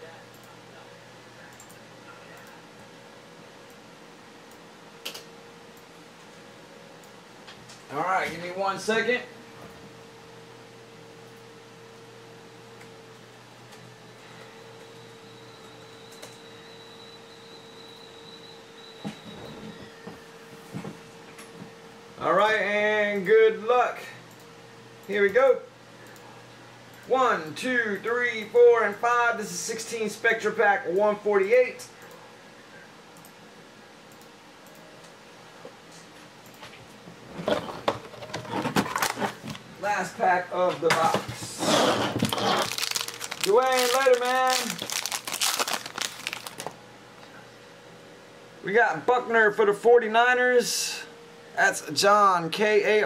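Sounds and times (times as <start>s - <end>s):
faint hum: 0.0s - 53.0s
thin high whine: 13.9s - 22.4s
soft clicks: 34.1s - 35.2s
cardboard box rustling: 42.1s - 46.7s.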